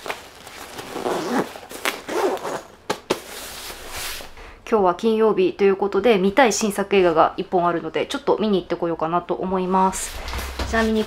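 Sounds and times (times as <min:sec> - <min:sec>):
zipper being pulled: 0:00.8 - 0:02.7.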